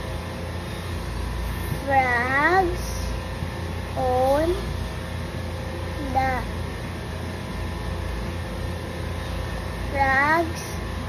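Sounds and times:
child's voice: 0:01.8 - 0:03.1, 0:04.0 - 0:04.7, 0:06.0 - 0:06.6, 0:09.9 - 0:10.8.

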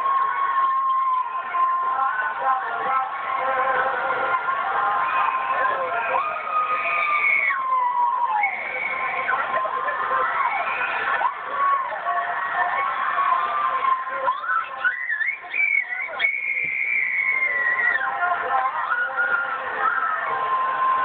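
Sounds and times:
people screaming on ride: 0:00.0 - 0:21.0.

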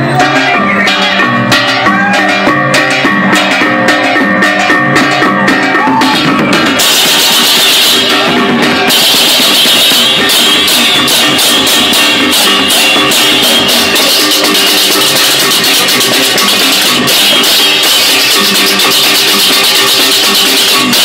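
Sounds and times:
clashing hand cymbals: 0:00.0 - 0:21.0
drums: 0:00.0 - 0:21.0.

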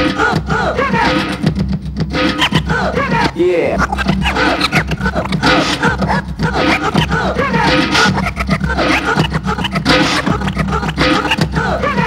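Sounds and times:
vinyl record scratching: 0:02.3 - 0:12.0.

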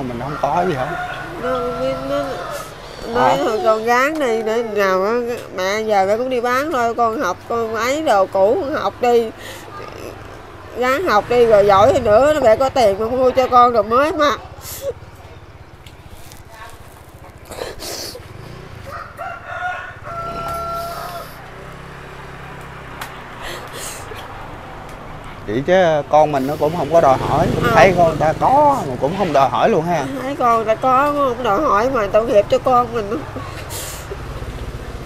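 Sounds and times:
motorbike engine passing: 0:00.0 - 0:35.0
rooster crowing: 0:00.1 - 0:03.8, 0:18.8 - 0:21.7.

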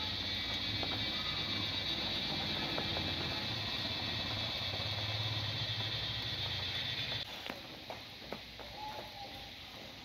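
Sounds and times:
low steady rumble: 0:00.0 - 0:07.3
insects buzzing: 0:00.0 - 0:10.0.

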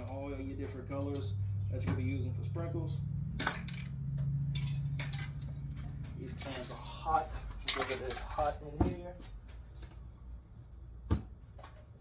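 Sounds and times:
steady low hum: 0:00.0 - 0:12.0
spray cans clinking together: 0:07.6 - 0:08.5.

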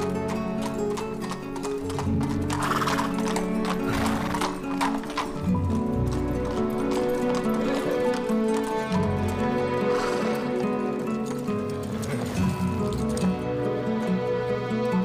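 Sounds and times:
horse hoofbeats: 0:00.0 - 0:14.6
film music: 0:00.0 - 0:15.0
horse neighing: 0:02.0 - 0:05.2, 0:09.7 - 0:10.8.

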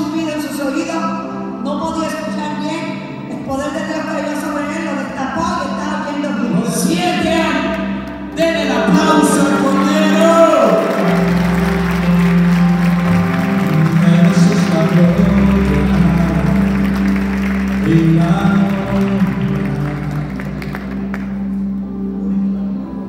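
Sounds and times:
low bass notes: 0:00.0 - 0:23.0
sustained keyboard chords: 0:00.0 - 0:23.0
hands clapping: 0:08.1 - 0:21.6
person singing: 0:08.4 - 0:21.0.

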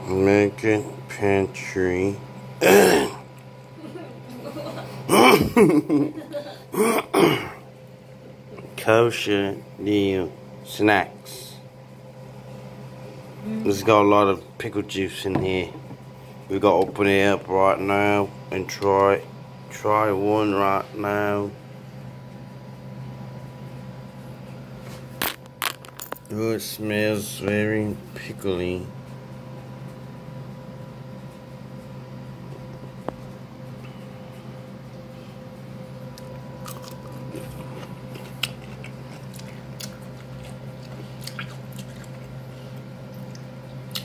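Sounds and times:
room hum: 0:00.0 - 0:44.0
crunchy chewing of pickle: 0:36.0 - 0:44.0.

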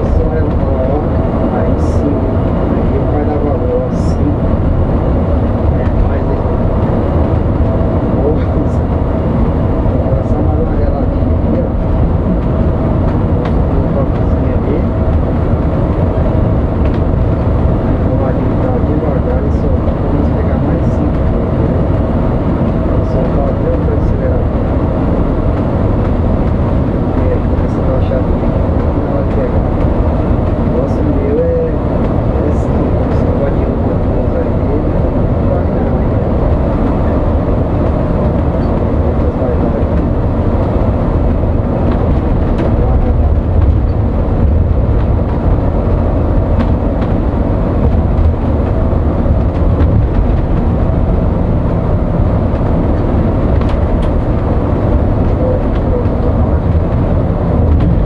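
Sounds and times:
bus engine and road noise: 0:00.0 - 0:58.0.

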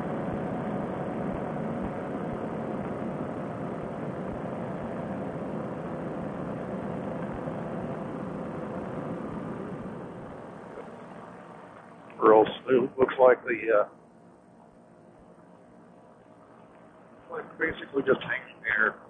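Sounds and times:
engine and propeller drone: 0:00.0 - 0:19.0.

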